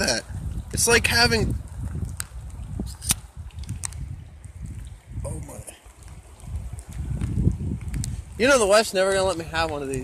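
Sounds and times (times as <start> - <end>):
microphone handling rumble: 0.0 - 10.0.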